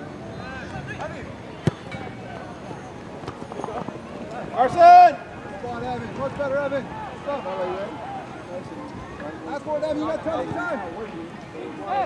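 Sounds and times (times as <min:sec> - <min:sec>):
people shouting on a field: 0:11.6 - 0:12.0.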